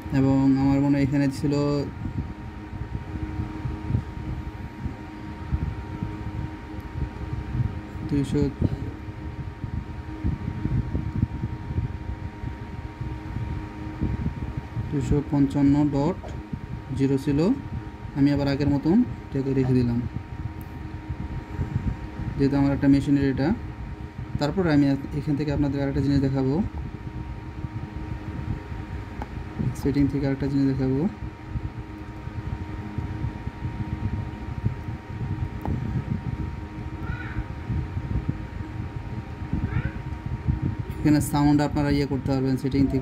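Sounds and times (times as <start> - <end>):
faint steady hum: 0.0 - 43.0
faint steady whine: 0.0 - 43.0
low rumbling background noise: 0.0 - 43.0.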